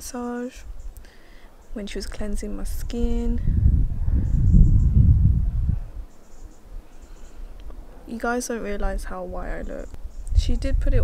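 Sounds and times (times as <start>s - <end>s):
wind buffeting microphone: 1.8s - 11.0s.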